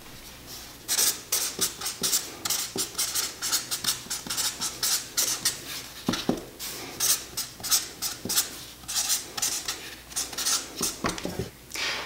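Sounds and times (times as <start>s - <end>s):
felt marker scratching on paper: 0.9s - 6.3s, 7.0s - 11.0s.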